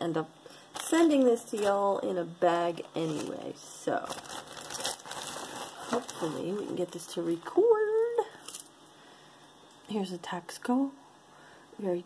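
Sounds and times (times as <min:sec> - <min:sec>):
plastic bag crinkling: 0:00.7 - 0:02.0, 0:02.8 - 0:08.8.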